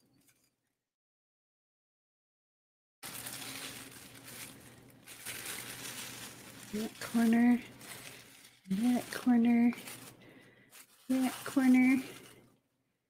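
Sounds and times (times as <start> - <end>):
plastic sheeting crinkling: 3.0 - 12.6.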